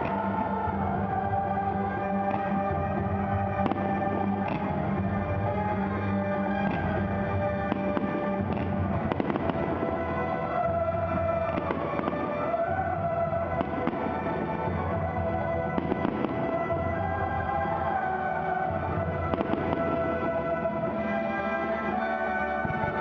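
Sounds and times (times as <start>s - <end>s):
music: 0.0s - 23.0s.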